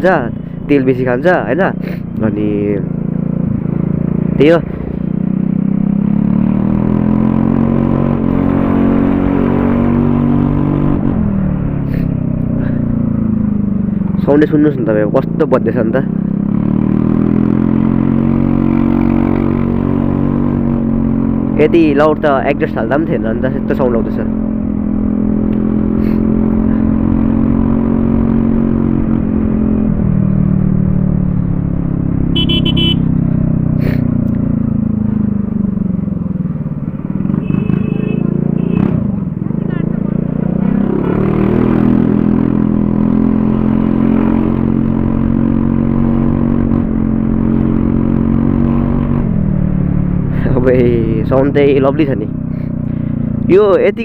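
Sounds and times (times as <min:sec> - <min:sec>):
scooter engine running: 0:30.6 - 0:40.8.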